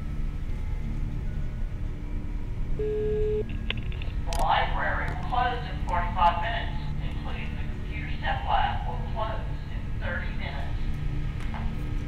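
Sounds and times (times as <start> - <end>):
low steady rumble: 0.0 - 12.0
phone notification beep: 2.8 - 3.5.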